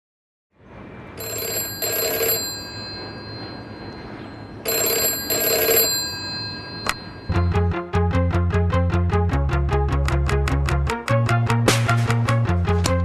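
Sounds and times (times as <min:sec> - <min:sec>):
telephone double ring: 0:01.2 - 0:07.3.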